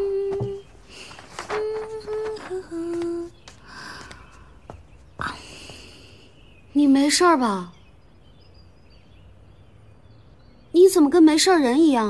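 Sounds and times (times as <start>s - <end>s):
woman humming: 0.0s - 0.7s, 1.4s - 3.4s
magazine pages turning: 0.5s - 4.3s.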